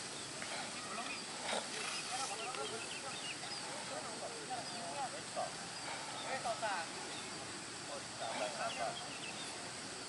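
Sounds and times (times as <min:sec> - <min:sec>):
faint scattered voices and calls: 0:00.0 - 0:10.0
outdoor background noise: 0:00.0 - 0:10.0.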